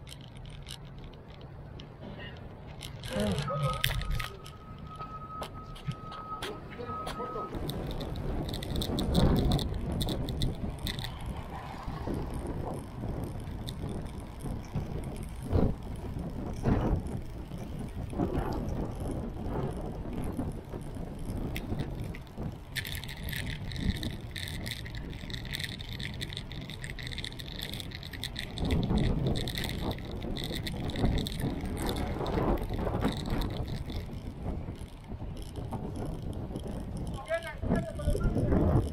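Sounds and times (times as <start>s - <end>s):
wind and road noise: 0.0s - 38.9s
fine rapid rattling: 7.5s - 38.9s.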